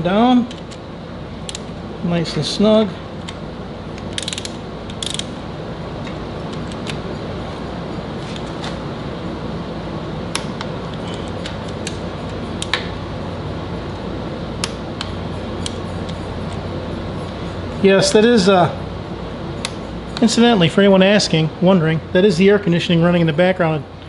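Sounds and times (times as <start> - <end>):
air conditioner hum: 0.0 - 24.0
hand ratchet clicking: 4.0 - 5.3.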